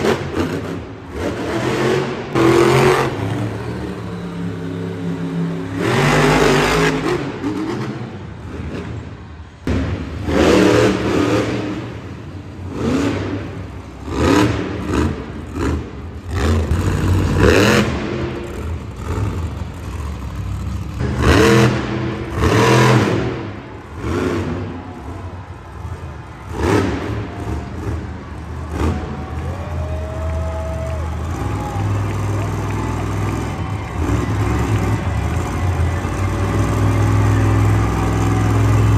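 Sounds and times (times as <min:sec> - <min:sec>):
truck engines revving: 0:00.0 - 0:38.9
low engine rumble: 0:23.2 - 0:38.9.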